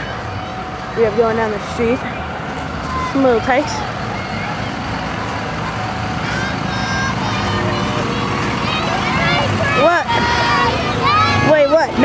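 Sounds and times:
crowd voices and shouts: 0:00.0 - 0:12.0
vehicle engine running: 0:00.0 - 0:12.0.

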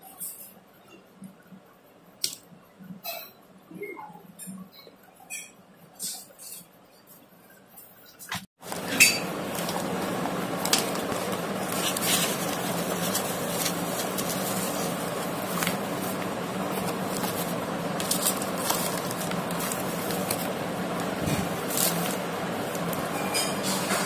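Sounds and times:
steady background noise: 0:00.0 - 0:24.0
paper and plastic rustling: 0:08.6 - 0:24.0.

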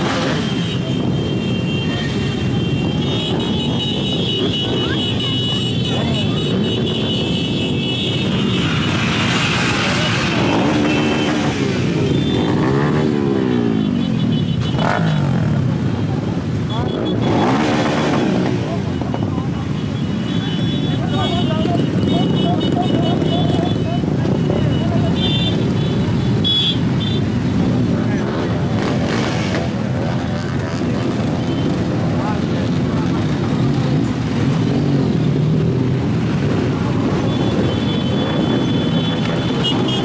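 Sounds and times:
crowd voices: 0:00.0 - 0:40.0
motorcycle engines revving: 0:00.0 - 0:40.0.

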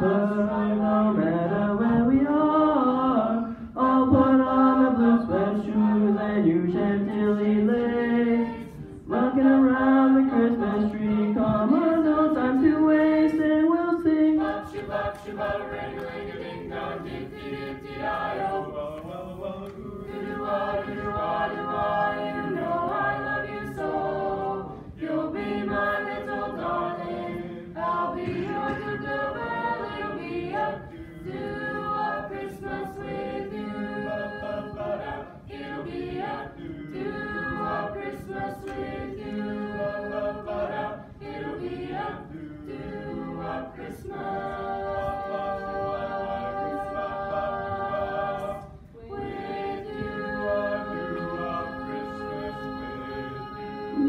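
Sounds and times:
choir singing in parts: 0:00.0 - 0:54.0.

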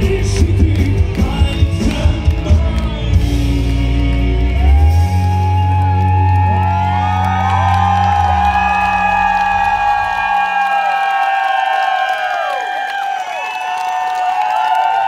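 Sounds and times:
audience cheering and whooping: 0:02.4 - 0:15.0.

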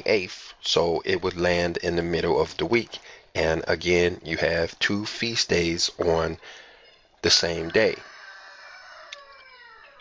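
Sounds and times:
rooster crowing: 0:07.6 - 0:10.0.

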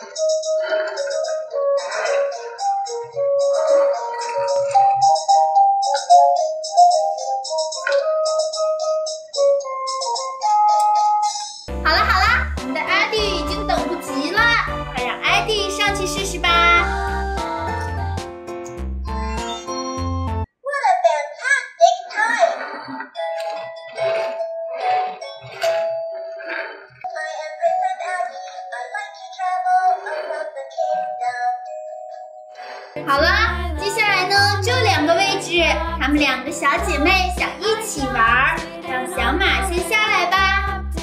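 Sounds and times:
music with bass beat and voices: 0:00.0 - 0:06.4, 0:11.7 - 0:17.8, 0:33.0 - 0:41.0
electronic toy beeping tune: 0:00.0 - 0:08.8.

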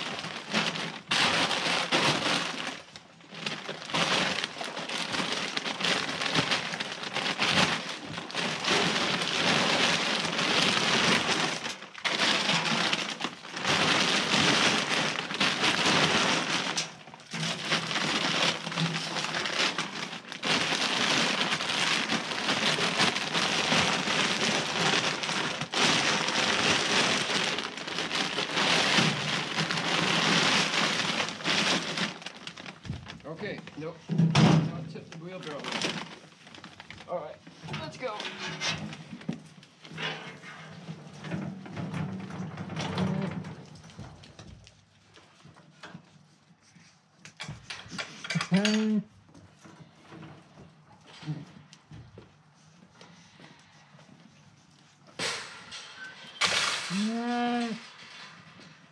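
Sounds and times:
plastic bags rustling: 0:00.0 - 0:40.0, 0:54.6 - 0:58.9
grain pouring into wheelbarrow: 0:07.8 - 0:32.3.

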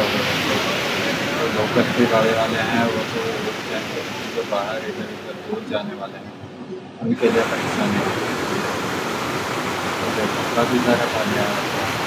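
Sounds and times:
stream rushing over boulders: 0:00.0 - 0:05.8, 0:07.1 - 0:12.0.

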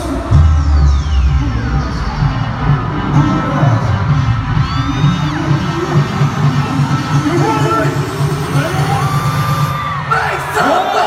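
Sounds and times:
fans cheering and screaming: 0:00.0 - 0:11.0
pop song over sound system: 0:00.0 - 0:11.0.

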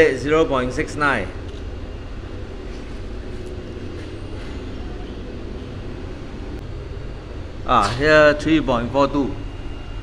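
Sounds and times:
low-pitched background drone: 0:00.0 - 0:10.0.

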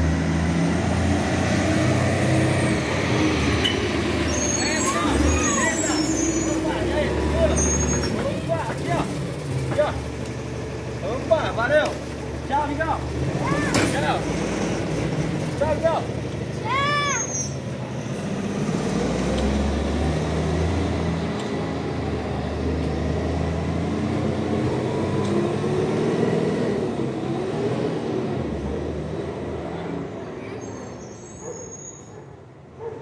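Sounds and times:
garbage truck driving off: 0:00.0 - 0:32.1.

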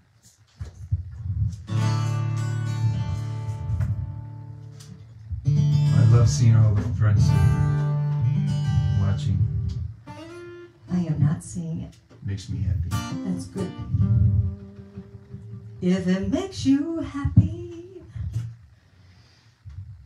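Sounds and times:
acoustic guitar strumming: 0:01.5 - 0:18.0.

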